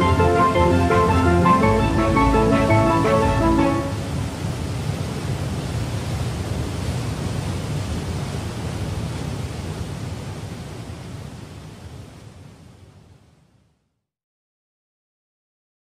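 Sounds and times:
rushing water: 0:00.0 - 0:13.2.

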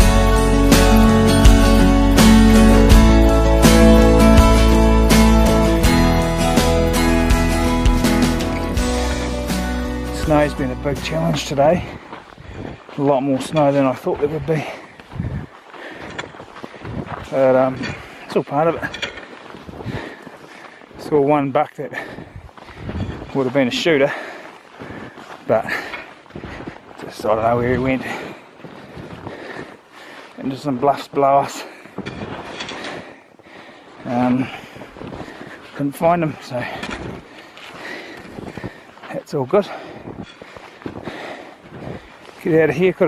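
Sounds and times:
wind buffeting microphone: 0:11.6 - 0:20.3, 0:22.1 - 0:23.5, 0:34.4 - 0:39.1, 0:39.8 - 0:42.4.

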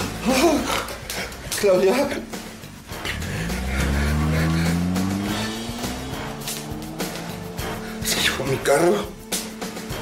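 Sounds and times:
car engine revving: 0:02.9 - 0:08.6.

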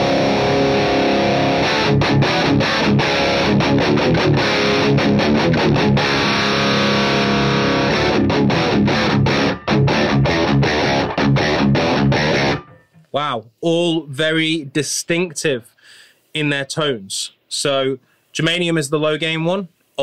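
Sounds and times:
overdriven electric guitar: 0:00.0 - 0:13.1.

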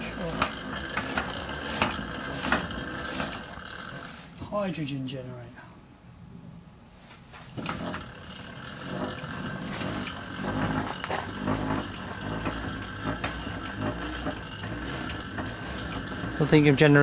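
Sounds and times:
drive knocking: 0:00.0 - 0:04.1, 0:07.5 - 0:17.0
hand-cranked generator whirring: 0:00.0 - 0:04.5, 0:07.4 - 0:17.0.

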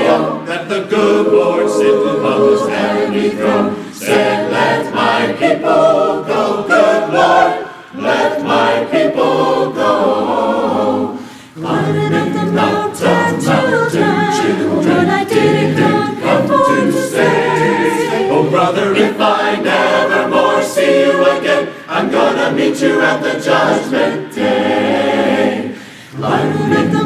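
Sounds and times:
choir singing in harmony: 0:00.0 - 0:27.0.

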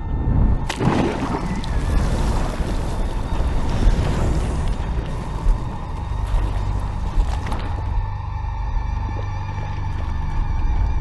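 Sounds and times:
steady rushing noise with rumble: 0:00.0 - 0:08.0.

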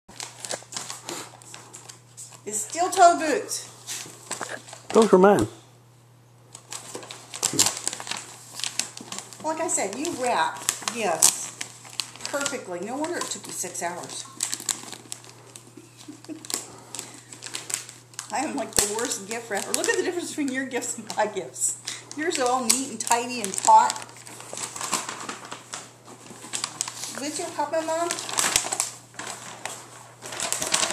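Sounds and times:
wrapping paper crinkling and tearing: 0:00.1 - 0:03.2, 0:03.8 - 0:05.1, 0:06.5 - 0:30.9.

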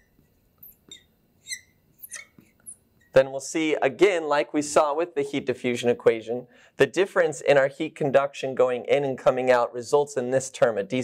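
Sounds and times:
marker squeaking on glass: 0:00.0 - 0:03.2.

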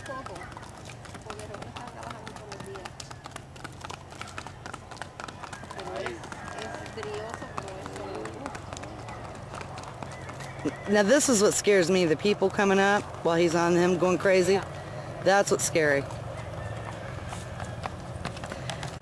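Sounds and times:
horse hooves on snowy road: 0:00.0 - 0:19.0.

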